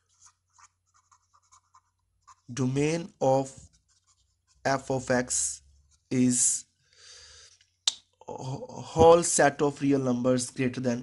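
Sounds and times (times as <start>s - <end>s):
pen scratching on paper: 0.0s - 2.6s, 3.6s - 4.8s.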